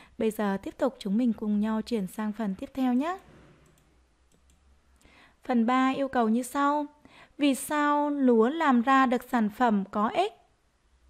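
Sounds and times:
woman speaking: 0.0s - 3.3s, 5.4s - 10.5s
faint computer mouse clicks: 3.6s - 4.7s.

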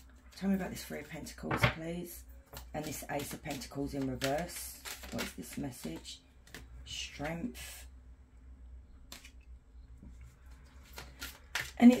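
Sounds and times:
cards flicking and sliding: 9.1s - 9.4s.

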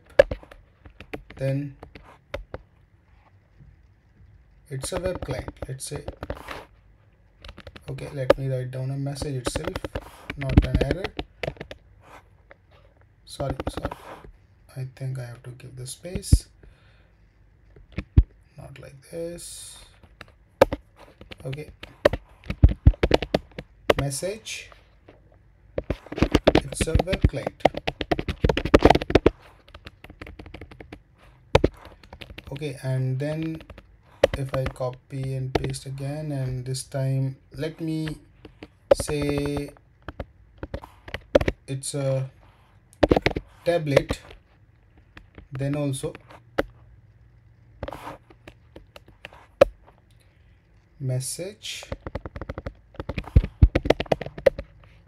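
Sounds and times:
computer keyboard typing: 0.0s - 2.6s, 7.4s - 11.8s, 13.4s - 14.0s, 20.0s - 24.8s, 25.8s - 36.6s, 37.8s - 41.7s, 51.8s - 55.0s.

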